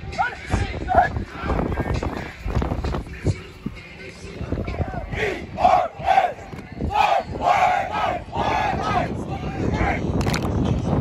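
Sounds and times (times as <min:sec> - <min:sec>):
team shouting in unison: 0:04.8 - 0:10.0.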